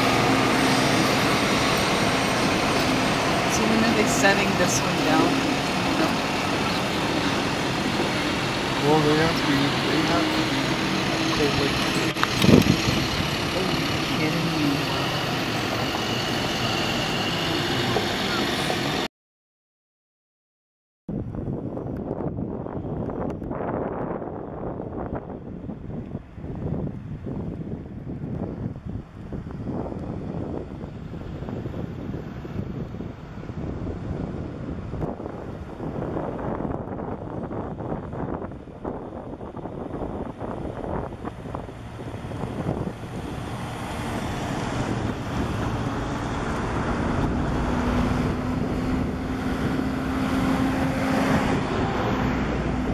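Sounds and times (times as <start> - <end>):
truck engine drone: 0.0 - 19.1, 21.4 - 52.9
trucks rumbling past: 0.0 - 19.1, 23.6 - 52.9
wind buffeting microphone: 0.0 - 19.1, 21.1 - 52.9.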